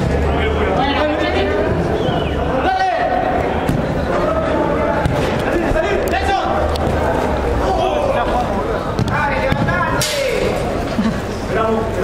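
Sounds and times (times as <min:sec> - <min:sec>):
players shouting and calling: 0:00.0 - 0:12.0.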